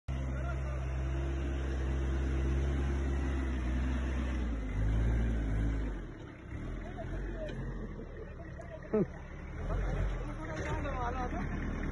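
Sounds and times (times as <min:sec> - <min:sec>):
tractor diesel engine under load: 0:00.1 - 0:11.9.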